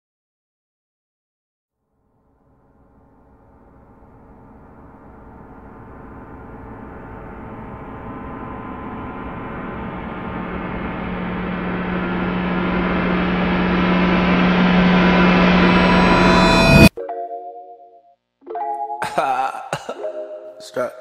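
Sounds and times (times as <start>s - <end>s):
gong-like riser swell: 2.4s - 16.9s
steady low hum: 2.5s - 16.9s.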